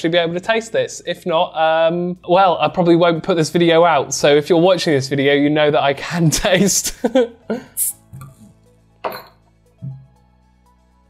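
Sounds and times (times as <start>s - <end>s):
quiet background music: 0.0s - 11.0s
bottle cap clink: 9.0s - 9.4s
bottle knocking on wooden table: 9.0s - 10.1s.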